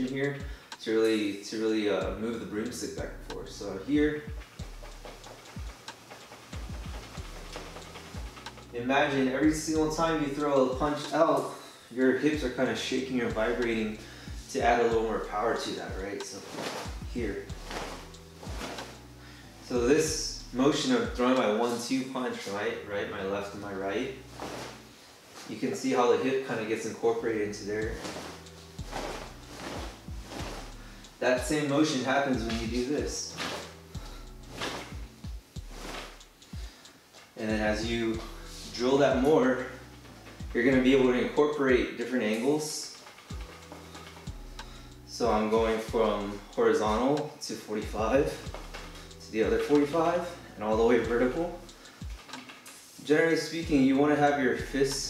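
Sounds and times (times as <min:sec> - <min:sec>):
cloth rustling and swishing: 0:02.8 - 0:11.6, 0:12.9 - 0:47.0, 0:47.9 - 0:54.0
soft low thuds: 0:03.0 - 0:08.5, 0:16.6 - 0:19.0, 0:27.7 - 0:31.6
broomstick thumping and clicking: 0:04.3 - 0:08.7.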